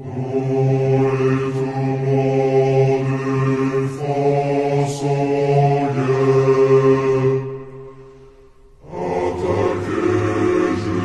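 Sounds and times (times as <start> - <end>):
choir singing held chords: 0.0 - 11.0.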